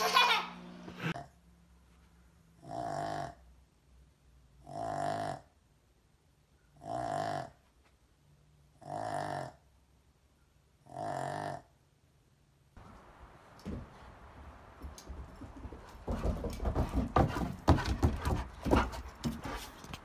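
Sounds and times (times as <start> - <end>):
small dog snoring: 2.6 - 3.4, 4.6 - 5.5, 6.8 - 7.5, 8.8 - 9.6, 10.8 - 11.7.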